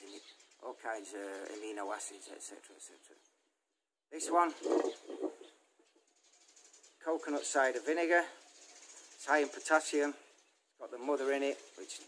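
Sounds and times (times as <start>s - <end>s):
bottle handling scraping and rustling: 4.5s - 5.5s.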